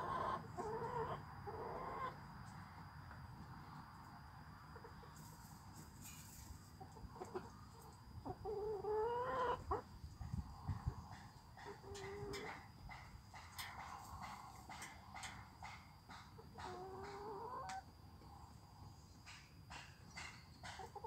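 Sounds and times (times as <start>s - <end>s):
hens calling: 0.0s - 2.2s, 8.3s - 9.9s.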